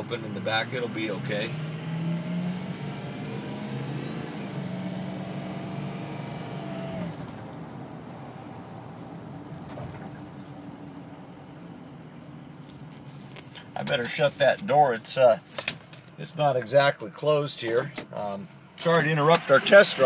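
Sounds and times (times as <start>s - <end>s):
diesel truck engine from inside cab: 0.0s - 20.0s.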